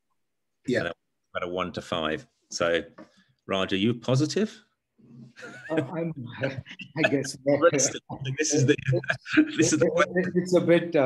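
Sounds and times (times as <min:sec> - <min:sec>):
man saying uh: 0:06.4 - 0:10.2.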